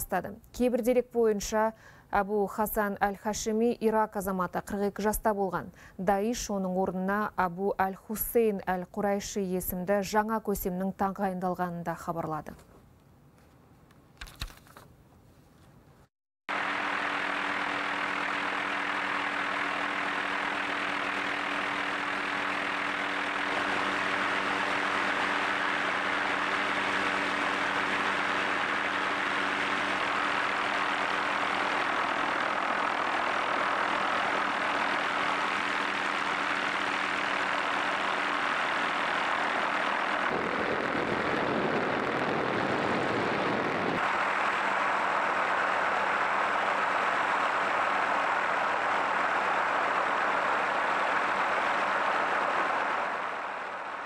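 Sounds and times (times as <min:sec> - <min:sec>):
helicopter engine and rotor hum: 0:16.5 - 0:54.0
rushing noise: 0:16.5 - 0:54.0.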